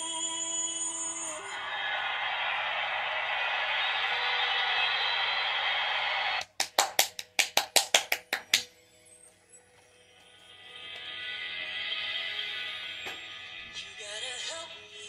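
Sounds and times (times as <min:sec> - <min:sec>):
audience cheering: 0:01.4 - 0:06.4
sharp claps: 0:02.2 - 0:08.7.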